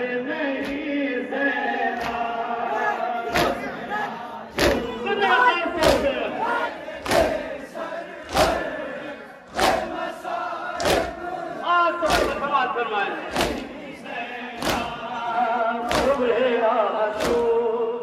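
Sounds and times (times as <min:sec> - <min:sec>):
crowd chanting in unison: 0:00.0 - 0:18.0
hands striking chests: 0:10.8 - 0:11.2, 0:12.1 - 0:12.4, 0:13.3 - 0:13.8, 0:14.6 - 0:15.0, 0:15.9 - 0:16.2.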